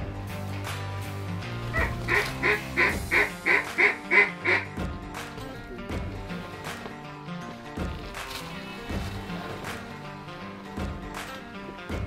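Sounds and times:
background music: 0.0 - 12.0
duck quacking: 1.7 - 4.8.

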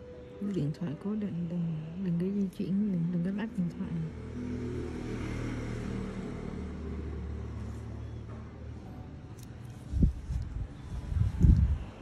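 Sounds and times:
low hum and rumble: 1.2 - 12.0.

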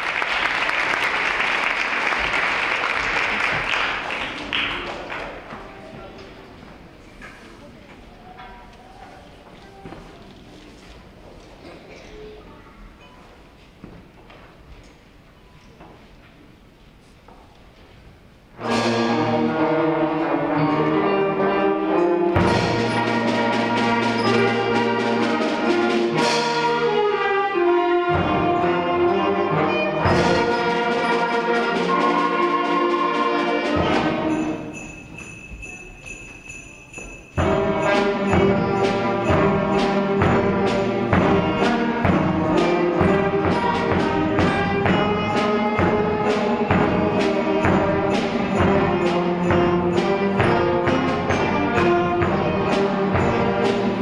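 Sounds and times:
concert band playing softly: 0.0 - 54.0
faint murmur of voices: 4.3 - 18.2.

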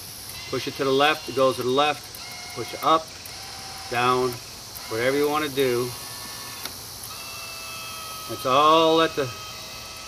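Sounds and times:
electric motor whine: 0.0 - 10.0.

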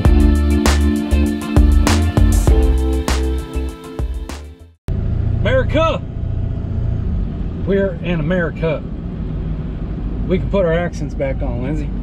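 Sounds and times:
road and engine rumble in cab: 4.9 - 12.0.

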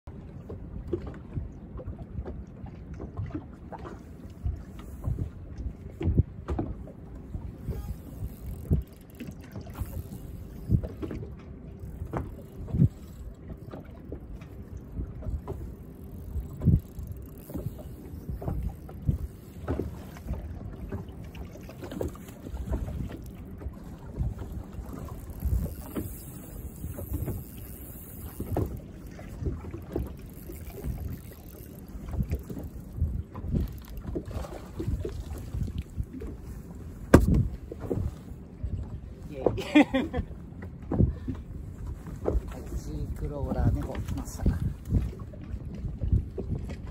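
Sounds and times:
waves knocking against hull: 0.4 - 46.9
wind buffeting microphone: 0.8 - 46.9.

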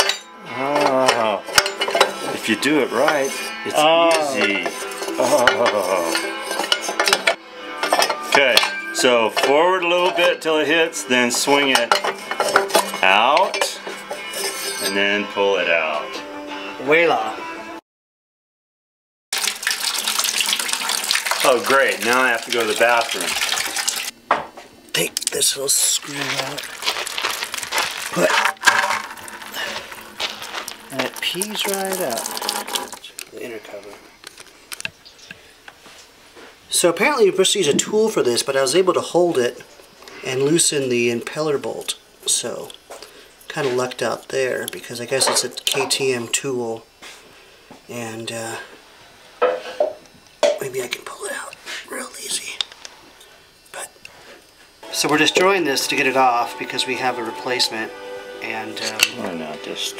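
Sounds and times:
coolant pouring onto concrete: 19.4 - 24.2, 25.2 - 33.3.

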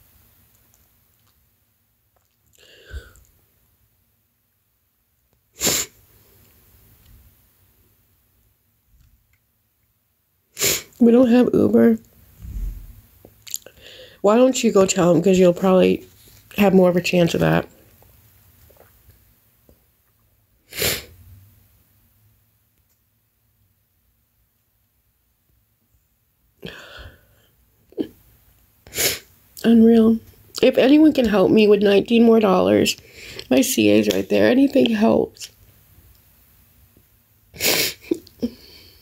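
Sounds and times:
sharp burst of breath: 5.6 - 6.0, 20.7 - 21.2, 28.9 - 29.3.

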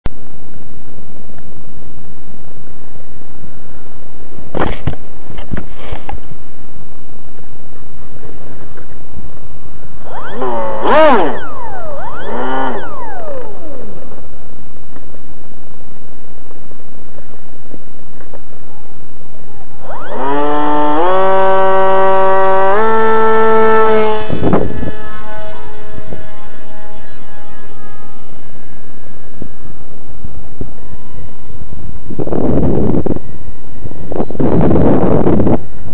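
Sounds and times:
electric motor propeller whine: 9.8 - 15.6, 19.5 - 34.4.

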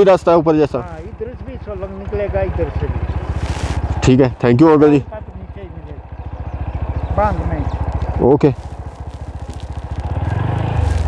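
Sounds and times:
motorcycle engine running low revs: 0.0 - 11.0.

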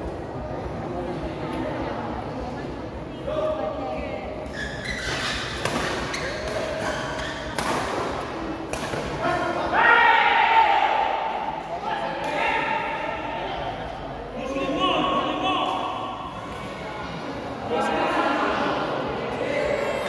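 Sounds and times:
rackets hitting shuttlecock: 5.6 - 9.2
people's voices: 5.7 - 20.0.

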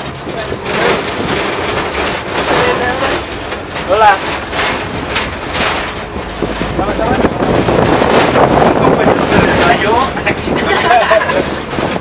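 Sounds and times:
knocks and rattles: 0.0 - 12.0
vehicle driving on rough dirt road: 0.0 - 12.0
wind buffeting microphone: 0.0 - 12.0.

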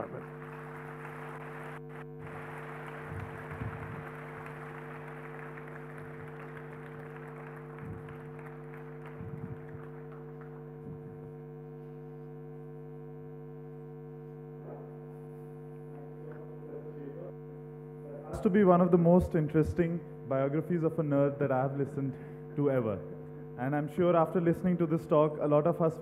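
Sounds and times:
audience applauding: 0.0 - 10.8
sound system electrical hum: 0.0 - 26.0.

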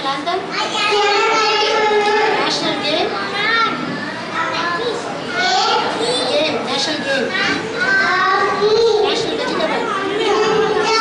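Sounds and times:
young children talking and calling: 0.0 - 11.0.

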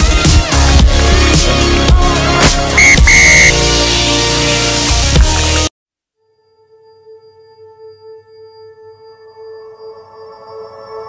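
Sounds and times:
electronic music with beat: 0.0 - 3.6
referee's whistle: 2.8 - 3.6.

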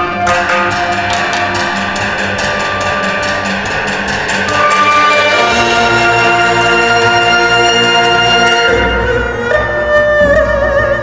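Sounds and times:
traditional orchestra playing: 0.0 - 9.9.

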